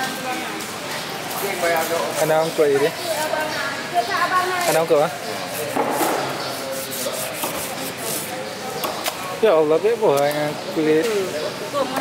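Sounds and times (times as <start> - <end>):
knife scraping wooden board: 5.5 - 8.4.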